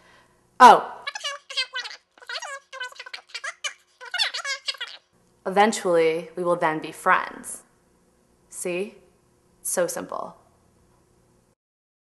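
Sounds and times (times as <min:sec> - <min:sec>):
high-pitched squeaky chatter: 0:01.0 - 0:05.0.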